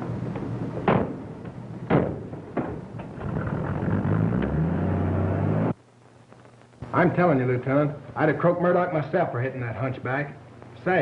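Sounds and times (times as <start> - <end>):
steady rain hiss: 3.2 - 11.0.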